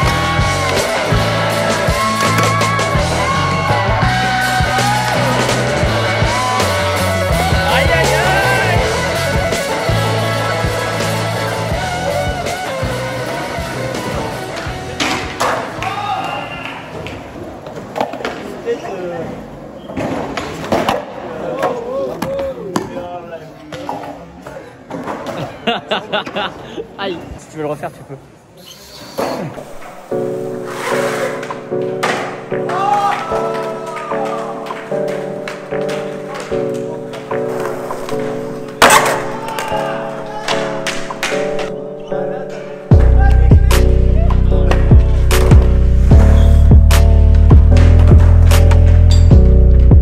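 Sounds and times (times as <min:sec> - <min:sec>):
background music: 0:00.0 - 0:16.4, 0:29.4 - 0:50.0
person calling out: 0:07.5 - 0:08.9
skateboard grinding on metal: 0:29.0 - 0:31.7
skateboarder crashing onto concrete: 0:37.3 - 0:41.6.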